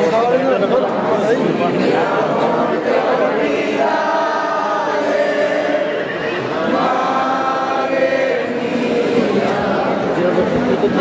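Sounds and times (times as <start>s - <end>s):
crowd singing in unison: 0.0s - 11.0s.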